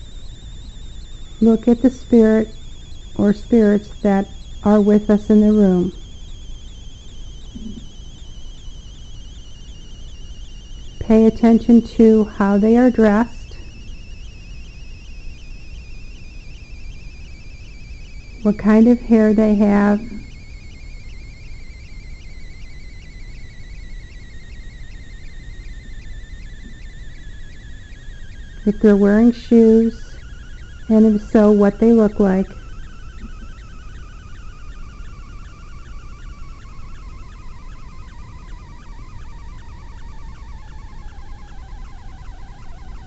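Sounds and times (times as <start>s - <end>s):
low hum: 0.0s - 43.0s
warbling electronic whine: 0.0s - 43.0s.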